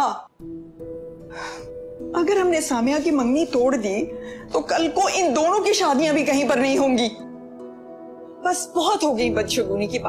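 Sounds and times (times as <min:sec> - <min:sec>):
soft sustained music chord: 0:00.4 - 0:10.0.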